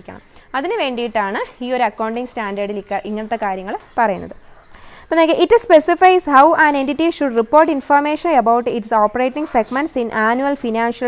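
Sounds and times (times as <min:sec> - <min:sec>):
woman lecturing: 0:00.0 - 0:04.4, 0:05.0 - 0:11.0
high-pitched whine: 0:00.0 - 0:11.0.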